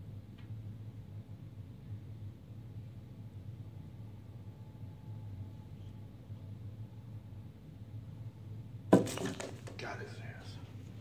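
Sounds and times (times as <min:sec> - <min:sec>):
whispered human exclamation: 0:09.8 - 0:10.6.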